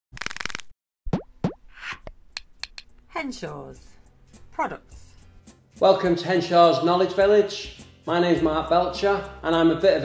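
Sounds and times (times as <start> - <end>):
falling plop blips: 1.1 - 2.0.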